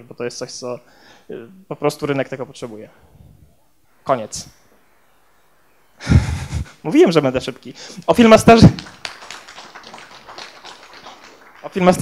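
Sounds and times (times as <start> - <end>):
audience applauding: 8.5 - 12.0.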